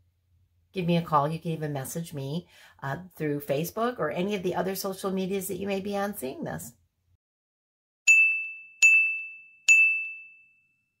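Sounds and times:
high electronic ding: 8.1s - 10.9s.

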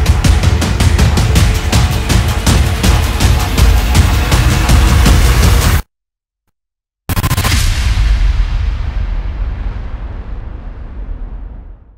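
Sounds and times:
deep cinematic boom: 7.4s - 11.9s.

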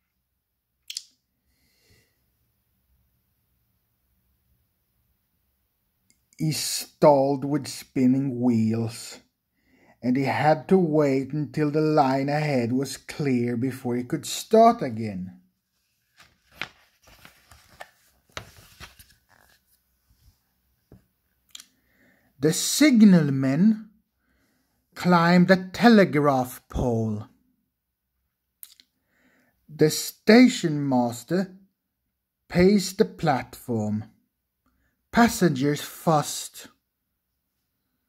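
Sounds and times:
faint breath in: 1.4s - 2.3s, 9.5s - 10.0s, 21.8s - 22.4s, 24.2s - 24.9s, 29.0s - 29.6s.

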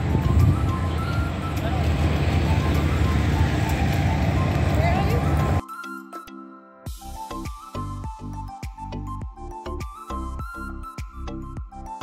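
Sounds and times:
wind buffeting microphone: 0.0s - 5.6s.

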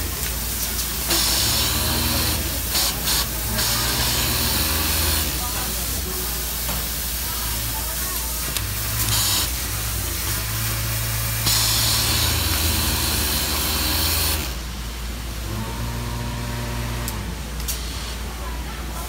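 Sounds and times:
factory hum: 0.0s - 19.0s
hiss: 0.2s - 14.5s
sewing machine running: 1.0s - 5.5s, 8.7s - 14.7s.

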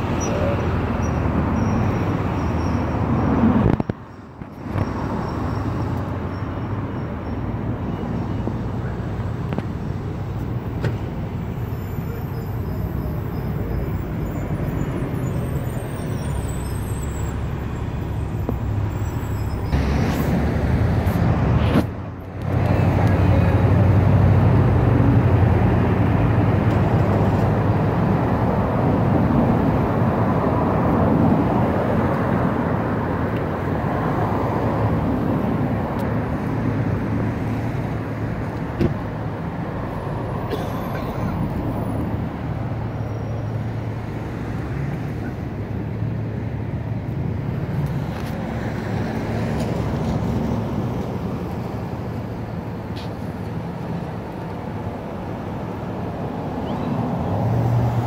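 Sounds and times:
road traffic on wet street: 0.0s - 58.0s.

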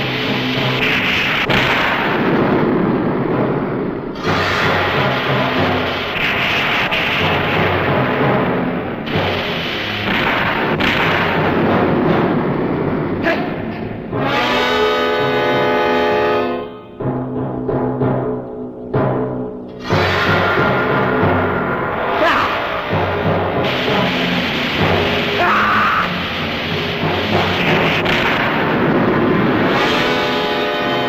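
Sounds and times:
explosions: 0.0s - 14.4s, 19.7s - 30.6s
rushing gas spray: 0.0s - 15.6s, 19.8s - 31.0s
orchestral battle music: 0.0s - 31.0s
long buzzing note: 29.6s - 31.0s.

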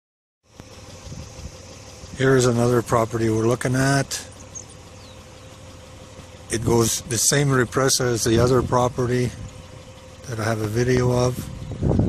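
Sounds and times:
low steady rumble: 0.4s - 12.0s.

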